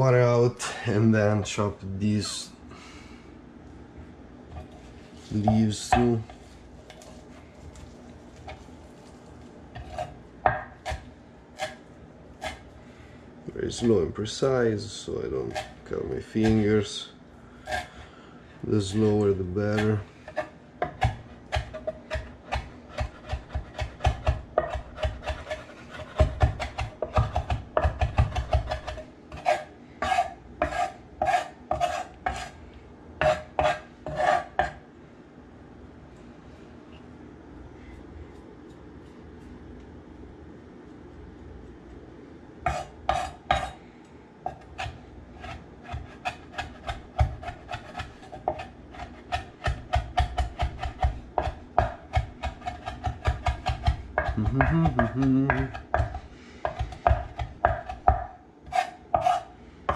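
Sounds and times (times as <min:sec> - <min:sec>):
knife chopping on wooden board: 0:09.8 - 0:11.8, 0:19.8 - 0:32.5, 0:33.2 - 0:34.8, 0:42.7 - 0:43.8, 0:44.5 - 0:59.9.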